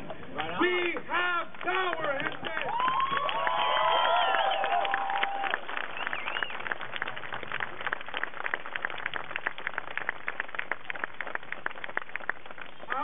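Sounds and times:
crowd applauding: 0.4 - 13.0.

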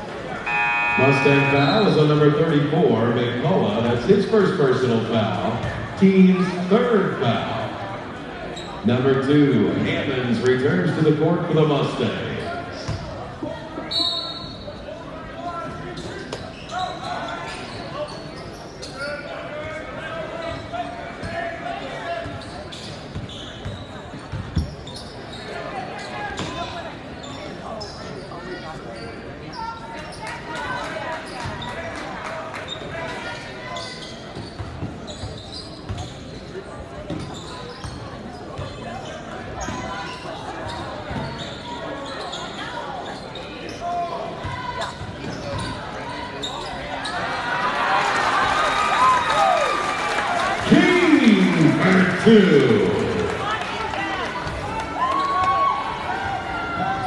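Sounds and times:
spectators talking: 0.0 - 24.3, 25.3 - 57.0.

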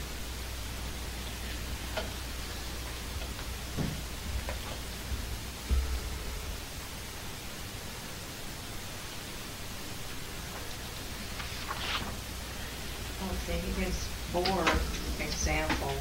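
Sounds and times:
videotape hiss: 0.0 - 16.0.

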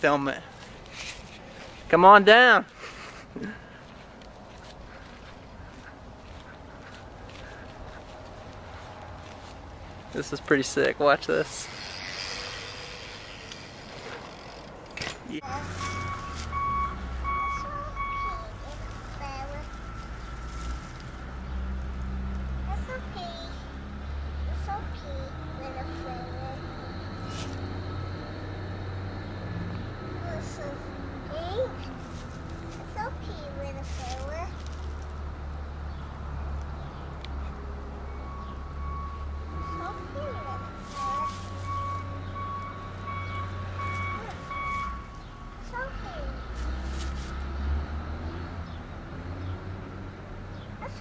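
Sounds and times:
reversing alarm beeping: 15.8 - 18.5, 38.0 - 45.2.

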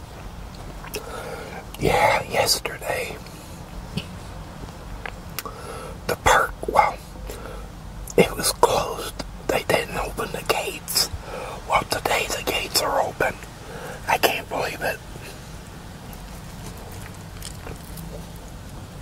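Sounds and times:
biting and chewing: 16.0 - 18.8.

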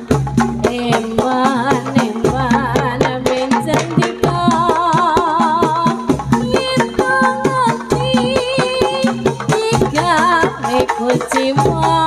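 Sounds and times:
gamelan-style ensemble: 0.0 - 12.0
hand drum beat: 0.0 - 12.0.

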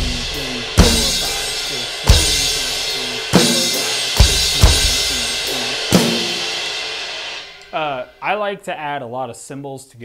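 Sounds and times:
electronic drum kit: 0.0 - 8.4
ride and crash cymbals ringing: 0.0 - 8.4.

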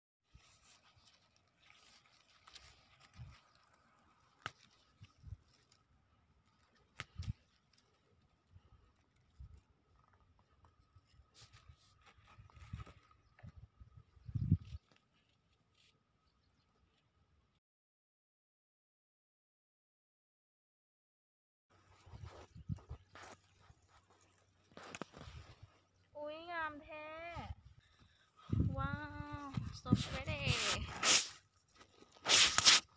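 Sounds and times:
faint rustling of plant leaves: 0.2 - 17.3, 21.7 - 32.9.

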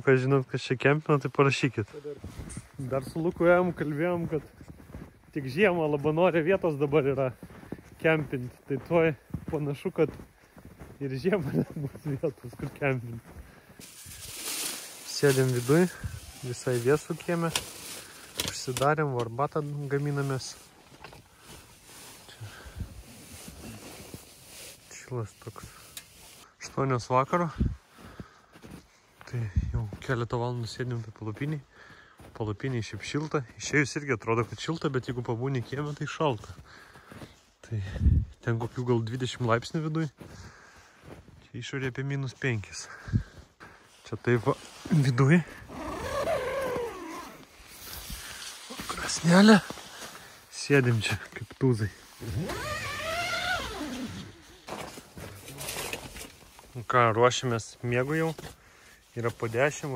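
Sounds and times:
man speaking: 0.0 - 4.5, 8.0 - 10.2, 11.0 - 13.3, 15.1 - 17.6, 44.0 - 45.6, 48.7 - 49.8, 50.5 - 52.0
zipper being pulled open: 45.5 - 47.5, 52.2 - 54.7.

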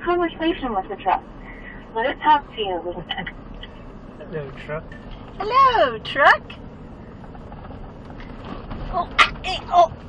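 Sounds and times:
truck engine rumble: 0.0 - 10.0
tyres rolling on gravel: 7.2 - 10.0.

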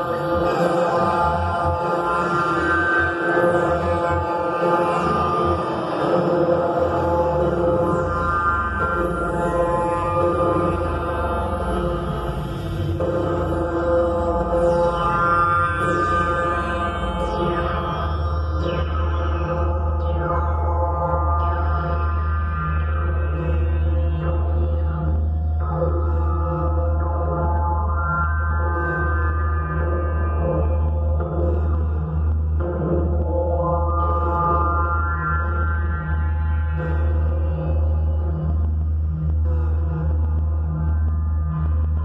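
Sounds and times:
electronic drone music: 0.0 - 42.0.

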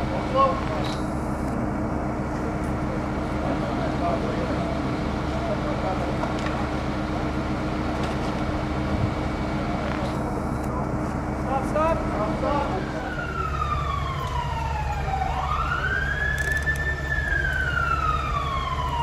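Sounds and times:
truck engine humming: 0.0 - 19.0.

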